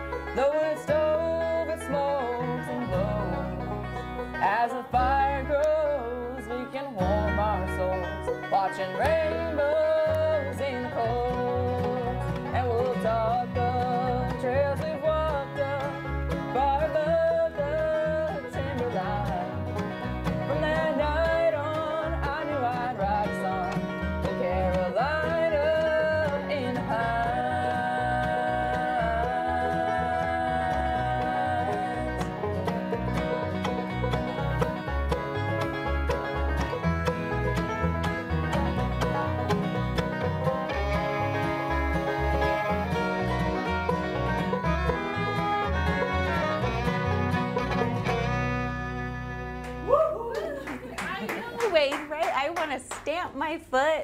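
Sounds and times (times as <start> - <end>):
strummed acoustic guitar: 0.0 - 49.9
bowed fiddle: 0.0 - 50.0
acoustic bass guitar: 0.0 - 52.4
picked banjo: 0.0 - 52.6.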